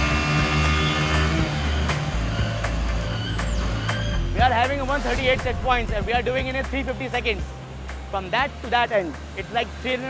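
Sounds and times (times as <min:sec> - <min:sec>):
motorcycle engines droning: 0:00.0 - 0:04.9
background music: 0:00.0 - 0:10.0.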